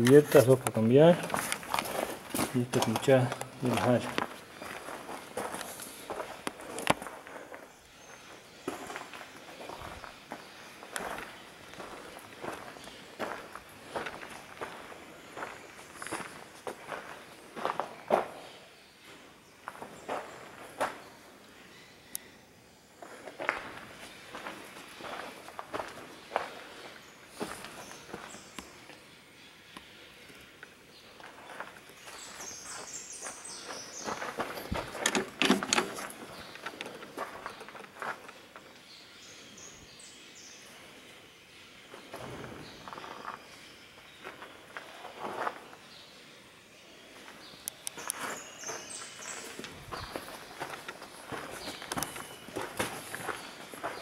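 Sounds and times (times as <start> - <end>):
footsteps on dirt floor: 0.0 - 18.4, 23.0 - 28.4, 31.2 - 38.7, 48.0 - 54.0.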